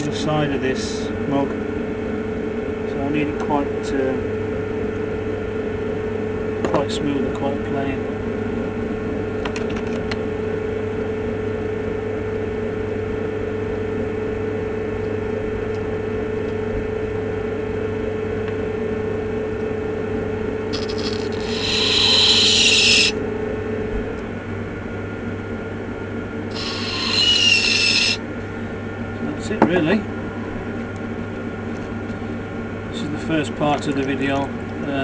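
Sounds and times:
electric potter's wheel humming: 20.7s - 23.6s, 26.4s - 28.9s
metal tool scraping clay: 20.8s - 23.1s, 26.5s - 28.2s.

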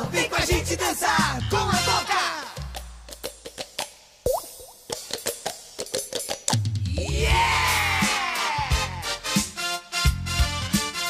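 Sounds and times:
music: 0.0s - 4.2s, 4.8s - 11.0s.

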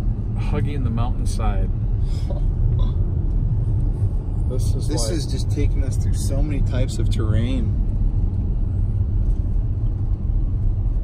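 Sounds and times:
car driving heard from inside: 0.0s - 11.0s.

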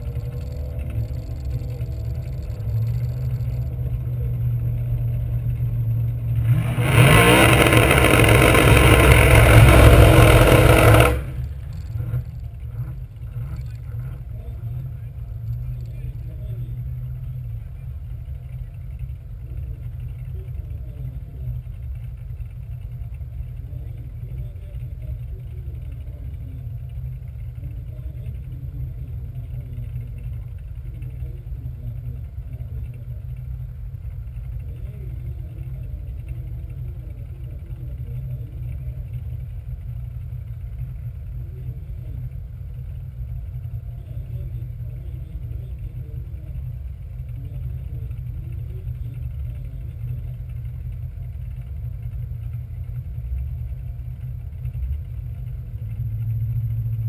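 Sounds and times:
car engine idling: 0.0s - 57.0s
engine revving and tyres spinning: 0.0s - 57.0s.

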